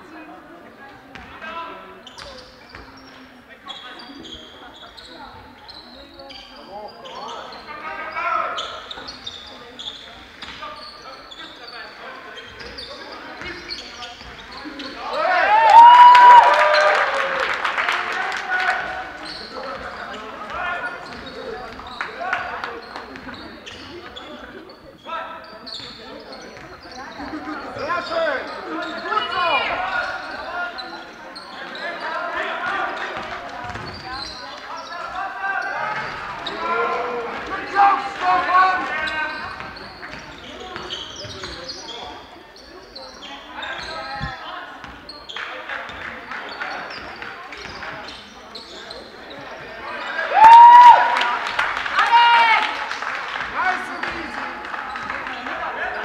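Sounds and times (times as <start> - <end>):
indistinct shouts and voices: 15.0 - 21.5, 49.5 - 56.0
basketball bouncing on gym floor: 33.2 - 34.2.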